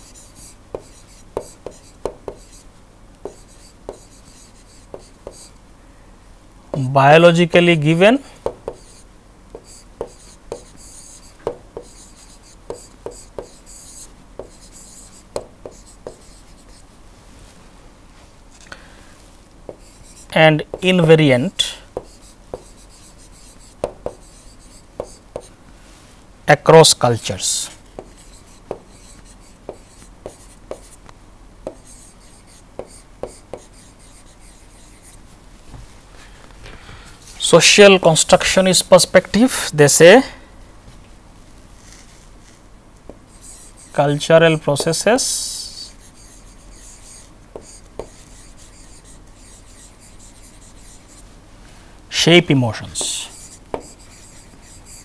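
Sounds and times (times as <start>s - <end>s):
stylus scratching: 0.0s - 5.5s, 8.7s - 16.9s, 19.7s - 25.5s, 28.0s - 31.0s, 31.7s - 35.3s, 43.3s - 51.3s, 52.2s - 55.0s
stylus tip tapping: 0.7s - 2.6s, 3.2s - 5.5s, 9.6s - 10.8s, 11.4s - 13.6s, 25.0s - 25.5s, 29.7s - 31.0s, 31.7s - 31.9s, 32.8s - 33.8s, 53.7s - 54.2s
pen tip tapping on screen: 3.2s - 4.1s, 4.9s - 5.5s, 8.4s - 9.0s, 11.4s - 12.0s, 12.7s - 13.6s, 14.4s - 14.7s, 22.0s - 22.8s, 29.7s - 31.0s, 31.6s - 31.9s, 32.8s - 33.8s, 53.7s - 54.1s.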